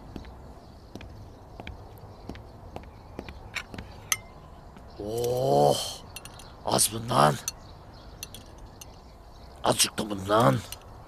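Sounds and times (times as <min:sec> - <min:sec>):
sharp ringing clink: 0:04.1 - 0:04.4.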